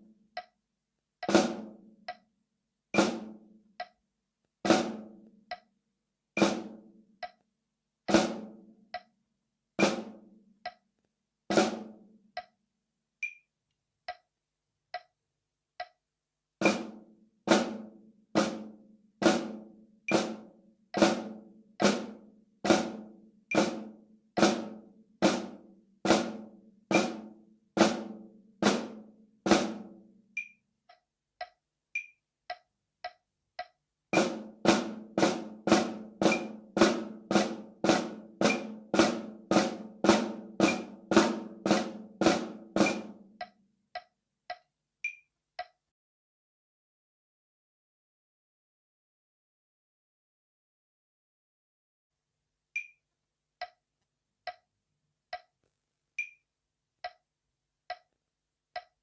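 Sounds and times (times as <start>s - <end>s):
faint metronome click: 0.3s - 0.6s, 1.2s - 1.4s, 2.0s - 2.3s, 3.8s - 4.0s, 5.5s - 5.7s, 7.2s - 7.5s, 8.9s - 9.2s, 12.3s - 12.6s, 13.2s - 14.3s, 14.9s - 15.2s, 15.8s - 16.0s, 30.4s - 34.3s, 42.8s - 45.8s, 52.8s - 53.0s, 54.4s - 54.6s, 55.3s - 55.5s, 56.2s - 56.4s, 57.0s - 57.2s, 57.9s - 59.0s
snare drum flams: 34.2s - 43.2s.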